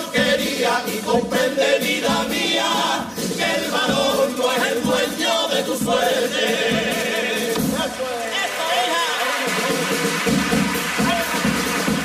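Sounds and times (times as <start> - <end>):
men singing in chorus: 0.0 - 8.9.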